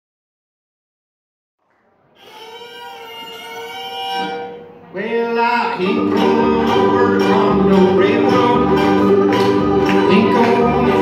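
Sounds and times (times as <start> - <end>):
fiddle holding long notes: 2.2 - 4.7, 5.6 - 11.0
bluegrass string band: 5.8 - 11.0.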